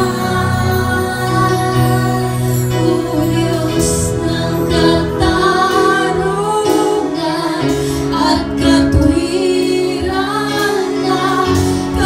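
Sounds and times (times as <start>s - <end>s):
instrumental accompaniment: 0.0s - 12.0s
woman singing worship song: 0.0s - 12.0s.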